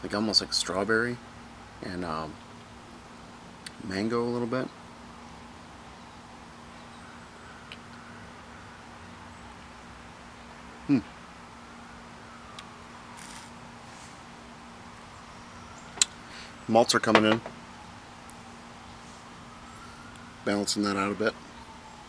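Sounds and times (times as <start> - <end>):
faint steady hum: 0.0 - 22.0
man humming hmm: 10.9 - 11.1.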